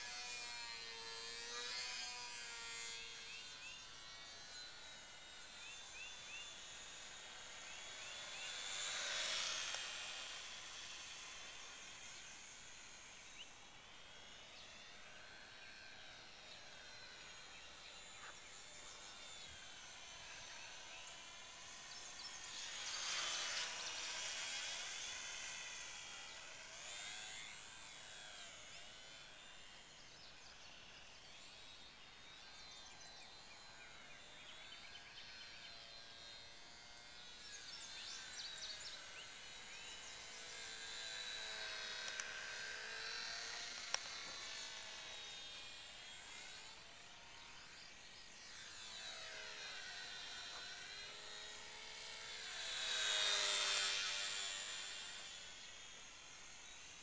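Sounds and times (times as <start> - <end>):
electric model airplane whining: 0.0 - 57.0.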